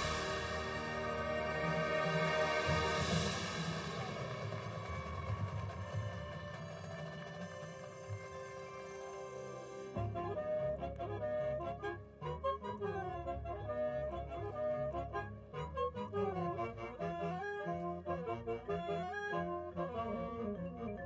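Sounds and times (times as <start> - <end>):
marching band playing: 0.0 - 8.1.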